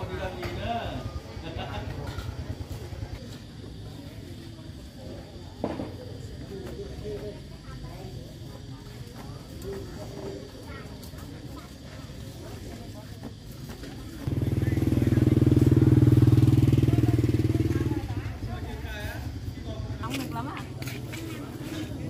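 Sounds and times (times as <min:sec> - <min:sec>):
motorbike engine rumbling: 0:00.0 - 0:05.2, 0:12.2 - 0:22.0
faint voices chatting: 0:00.0 - 0:22.0.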